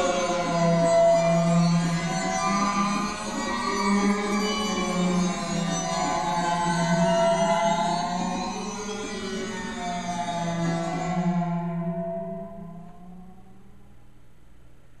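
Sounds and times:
synthesizer pad over low drone: 4.7 - 14.3.

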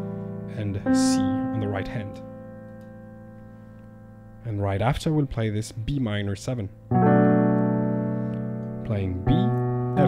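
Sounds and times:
piano chord: 0.0 - 5.2, 6.7 - 10.0.

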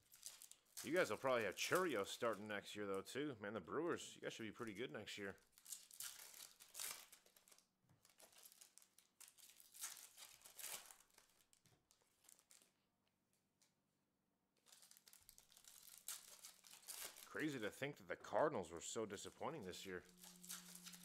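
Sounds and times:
foil wrappers tearing and crinkling: 0.0 - 2.3, 5.5 - 12.7, 14.6 - 17.6, 19.2 - 21.0.

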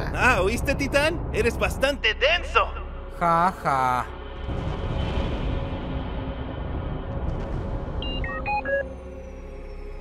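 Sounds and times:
background music: 0.0 - 10.0
short electronic beeps: 8.0 - 8.9.

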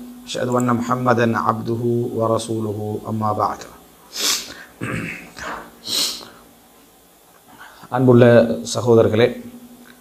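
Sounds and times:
sharp hissing breath: 4.1 - 4.8, 5.4 - 6.5.

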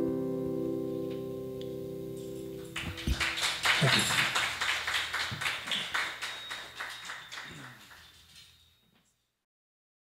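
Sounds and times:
small audience clapping: 2.6 - 8.6.

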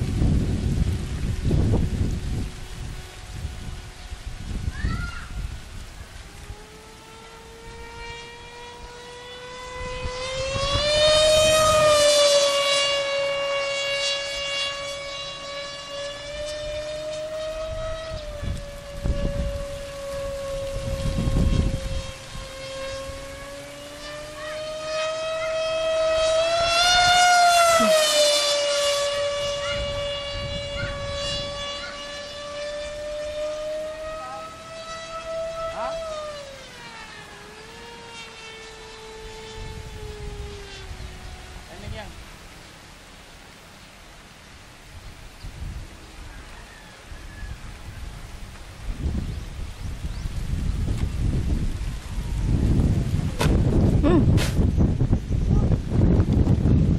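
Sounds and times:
model jet motor whining: 0.0 - 42.7
low rumbles on microphone: 47.5 - 56.9.

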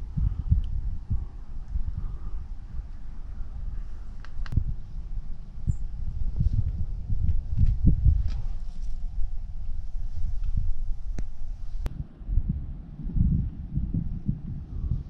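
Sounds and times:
wind buffeting microphone: 0.0 - 15.0
sharp clicks: 4.2 - 4.6.

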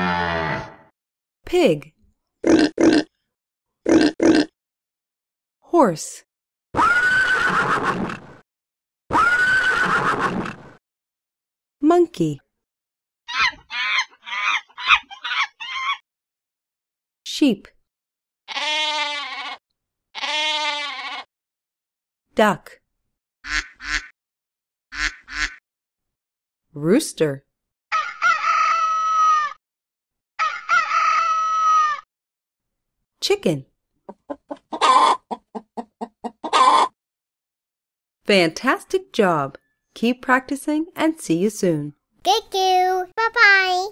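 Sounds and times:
horse whinnying: 0.0 - 0.9, 6.8 - 8.1, 9.1 - 10.5
hen cackling: 13.3 - 16.0, 27.9 - 29.6, 30.4 - 32.0, 34.3 - 37.0
duck quacking: 23.5 - 24.1, 25.0 - 25.6.

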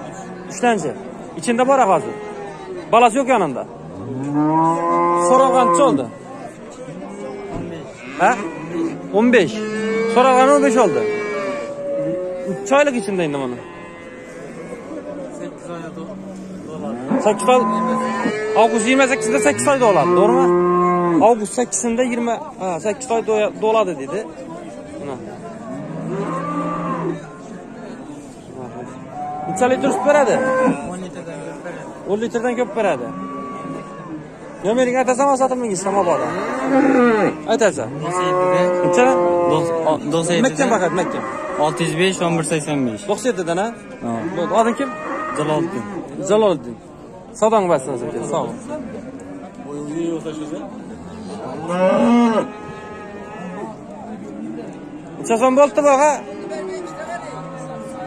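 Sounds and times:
cow mooing: 4.0 - 6.2, 7.1 - 15.0, 15.9 - 21.3, 25.1 - 27.3, 28.7 - 31.0, 32.5 - 34.3, 35.8 - 42.6, 43.5 - 46.1, 51.0 - 53.8.

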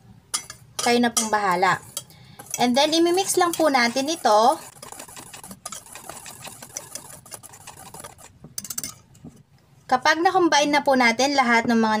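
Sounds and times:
wire whisk scraping metal bowl: 0.4 - 9.1.

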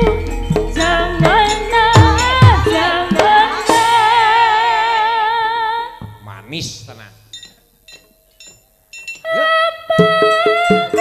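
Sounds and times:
metallophone notes ringing: 7.2 - 11.0.

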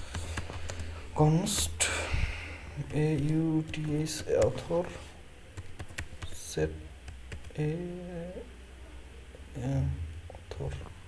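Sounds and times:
person speaking: 0.0 - 5.2, 6.1 - 11.0.

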